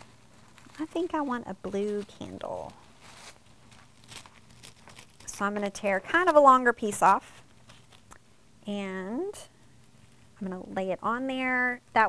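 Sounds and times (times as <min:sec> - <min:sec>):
tissue paper crinkling: 0:00.0 - 0:08.1.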